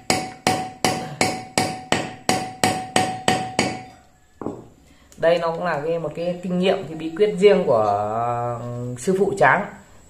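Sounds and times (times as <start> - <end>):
hammer striking metal on anvil: 0.0 - 4.6.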